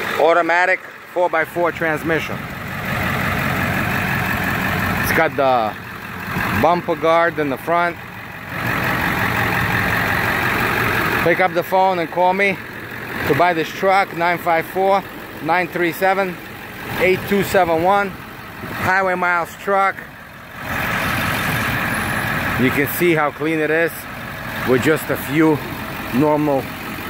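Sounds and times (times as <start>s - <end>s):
diesel engine idling: 0.0s - 27.0s.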